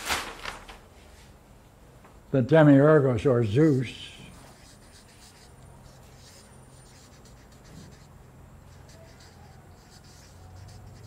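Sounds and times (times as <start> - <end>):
marker writing on paper: 3.4 - 11.0.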